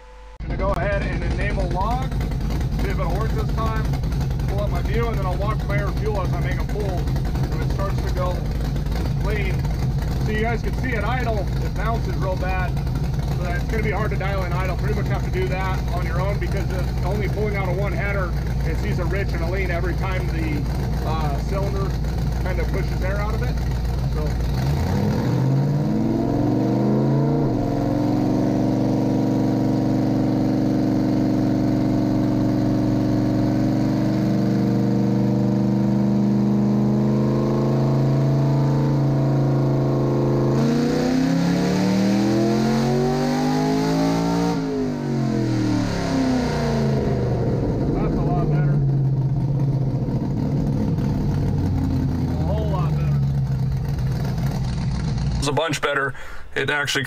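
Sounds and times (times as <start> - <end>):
engine revving on dyno: 0.3 - 55.6.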